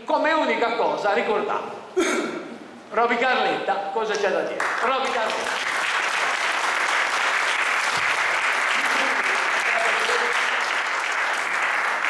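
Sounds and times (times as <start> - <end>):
audience applauding: 4.6 - 12.0.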